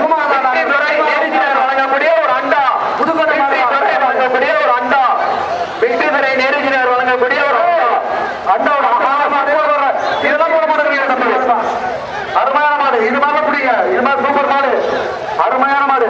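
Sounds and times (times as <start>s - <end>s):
man speaking: 0.0s - 16.0s.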